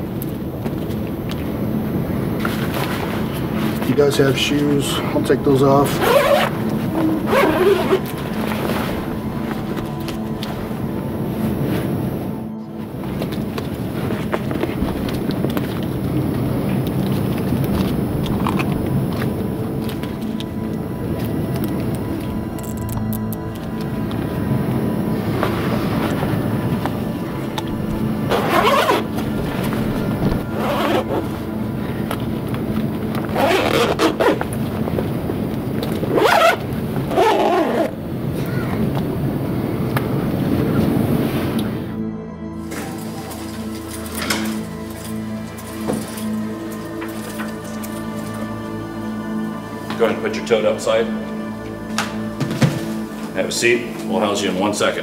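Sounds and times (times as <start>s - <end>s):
background music: 0.0s - 55.0s
zipper being drawn: 6.0s - 8.1s, 28.3s - 29.1s, 30.5s - 31.3s, 33.3s - 34.5s, 36.1s - 38.0s.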